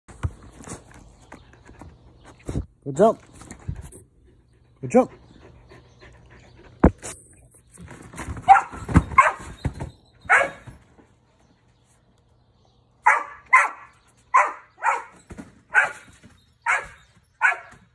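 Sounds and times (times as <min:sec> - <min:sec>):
trampoline mat thumps: 0:08.1 - 0:10.8
dog barking: 0:08.5 - 0:09.5, 0:10.3 - 0:10.7, 0:13.0 - 0:17.8.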